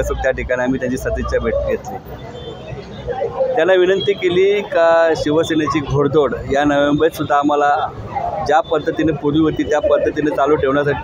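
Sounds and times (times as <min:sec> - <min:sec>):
man speaking: 0:00.0 - 0:02.0, 0:03.6 - 0:11.0.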